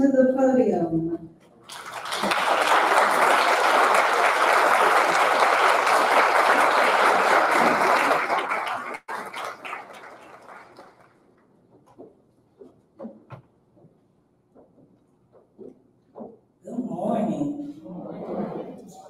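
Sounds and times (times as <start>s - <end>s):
audience applauding: 1.6s - 11.2s.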